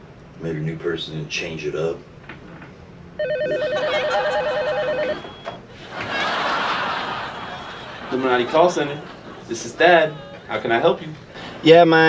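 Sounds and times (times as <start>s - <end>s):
telephone warbling ring: 3.2s - 5.6s.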